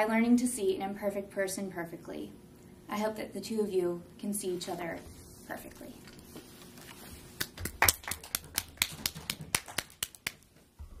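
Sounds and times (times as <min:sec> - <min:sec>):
small audience applause: 0:07.5 - 0:10.4.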